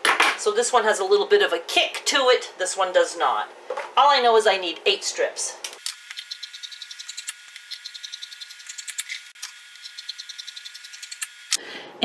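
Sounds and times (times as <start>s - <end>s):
air conditioner hum: 0.0s - 12.0s.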